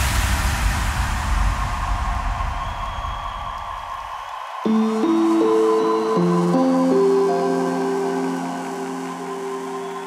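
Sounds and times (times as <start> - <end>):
electronic music noisy wash: 4.7 - 10.0.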